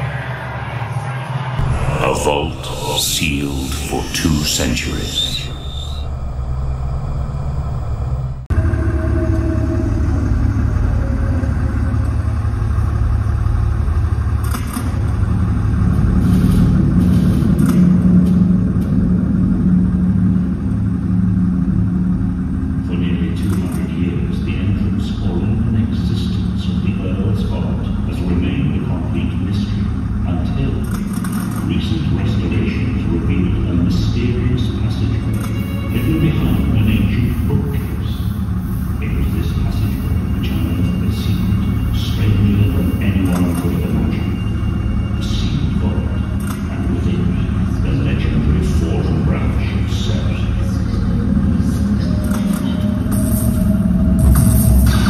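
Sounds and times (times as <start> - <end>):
low rumbling drone: 0.0 - 55.0
voices: 1.6 - 6.1, 22.8 - 31.0, 31.6 - 38.4, 39.0 - 53.3.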